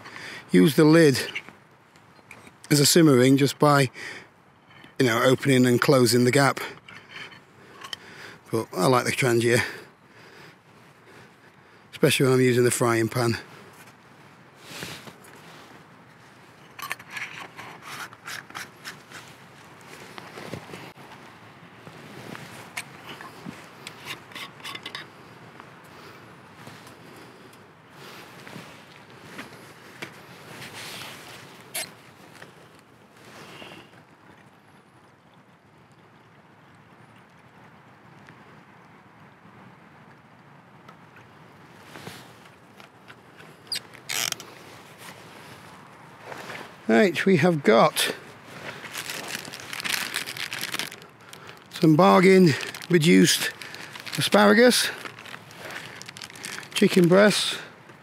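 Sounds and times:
plastic bottle being handled: 48.5 - 58.0.

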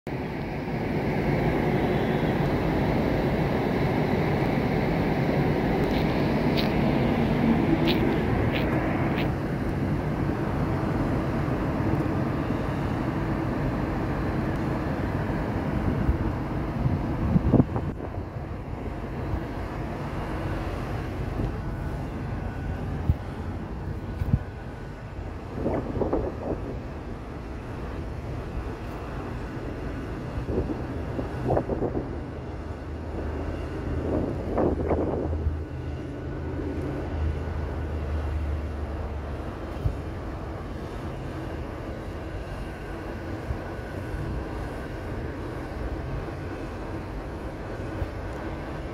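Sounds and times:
city noise roar: 0.1 - 48.9.

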